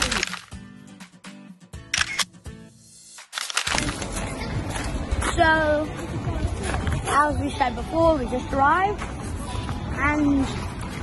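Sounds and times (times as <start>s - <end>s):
background music: 0.0s - 11.0s
camera shutter clicks: 1.9s - 2.3s, 3.2s - 4.1s.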